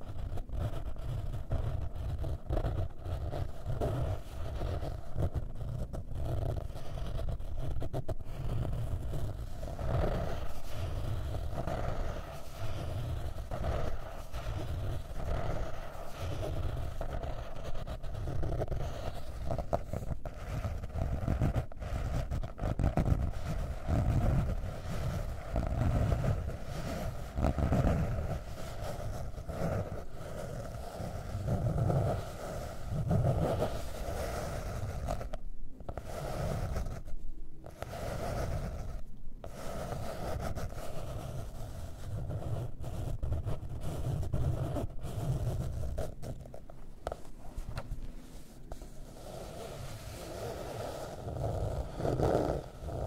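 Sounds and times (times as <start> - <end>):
fingernails scratching notebook cover: 0.0 - 53.0.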